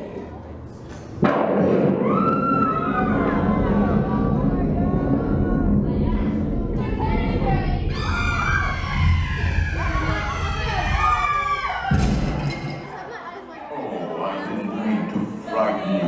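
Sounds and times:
low rumble: 0:01.7 - 0:12.6
scattered voices: 0:02.2 - 0:16.0
shrill wavering scream: 0:07.9 - 0:12.0
sudden crash: 0:11.8 - 0:12.8.

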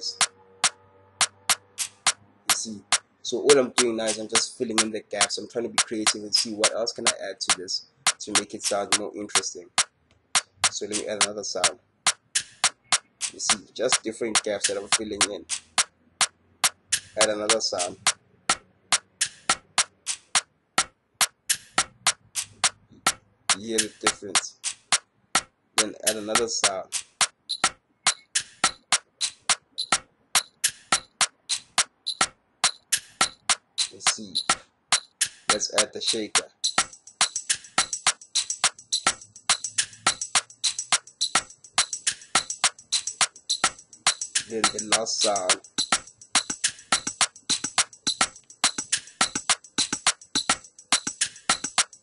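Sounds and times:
programmed percussion loop: 0:00.0 - 0:52.0.

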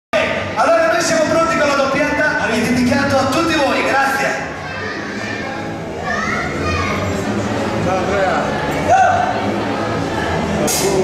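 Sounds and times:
voices talking and calling out: 0:00.2 - 0:11.0.

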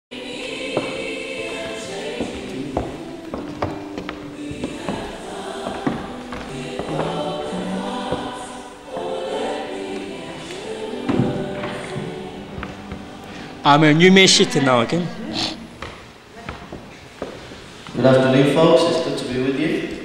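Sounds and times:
group singing a hymn: 0:00.1 - 0:16.3.

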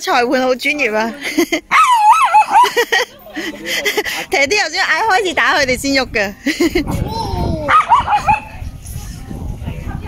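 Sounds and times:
small dogs barking and yipping: 0:01.7 - 0:02.8, 0:07.7 - 0:08.6.

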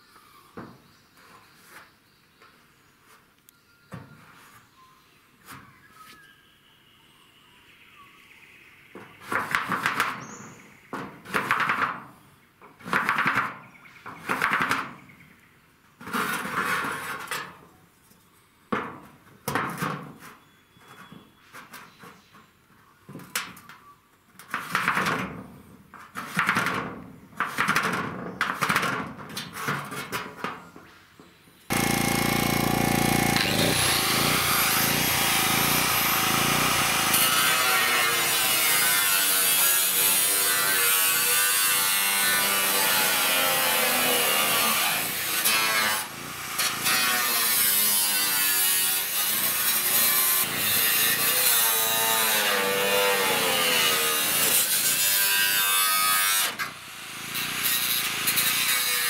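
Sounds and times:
angle grinder cutting metal: 0:31.7 - 0:59.0.

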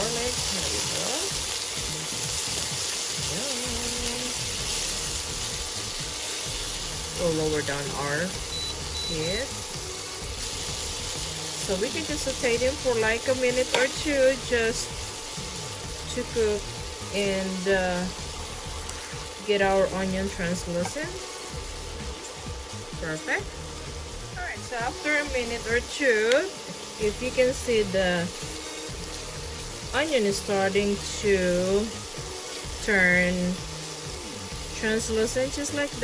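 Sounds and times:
onion and garlic sizzling in oil: 0:00.0 - 0:36.0.

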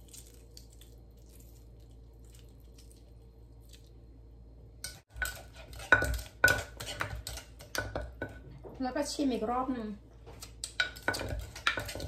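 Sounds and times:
wooden pestle knocking in mortar: 0:05.1 - 0:08.4, 0:10.6 - 0:12.0.

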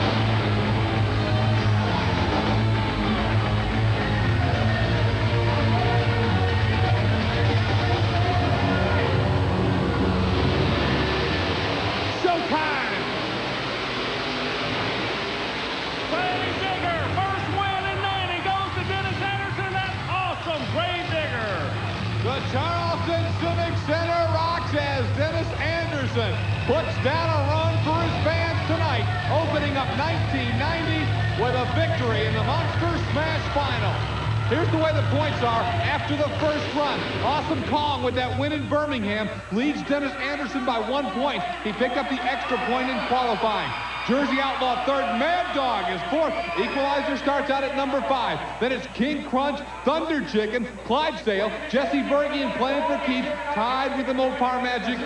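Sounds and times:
monster truck engines droning: 0:00.0 - 0:39.1
music: 0:00.0 - 0:49.0
crowd shouting and cheering: 0:00.0 - 0:55.0.

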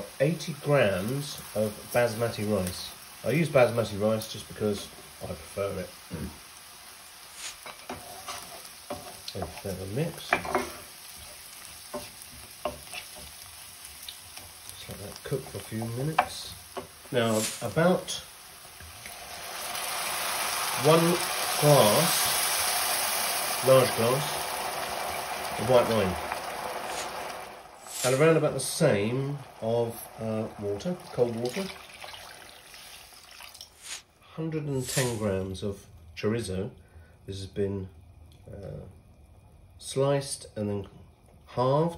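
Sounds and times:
onion and rice sizzling in pan: 0:00.0 - 0:38.6.

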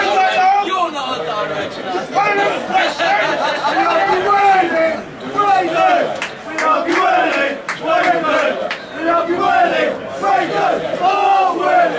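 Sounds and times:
football supporters chanting: 0:02.2 - 0:11.9.

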